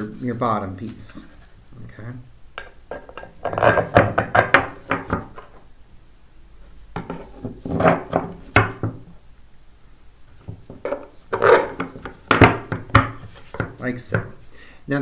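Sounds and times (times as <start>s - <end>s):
bolts knocking on wooden board: 2.6s - 5.5s, 10.4s - 14.4s.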